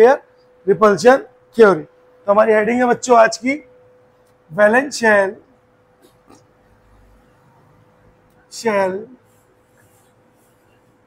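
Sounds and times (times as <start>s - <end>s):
marker writing on whiteboard: 9.1s - 11.0s.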